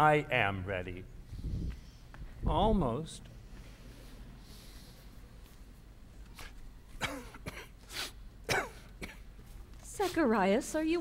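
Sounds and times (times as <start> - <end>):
elderly man coughing: 7.0 - 9.3.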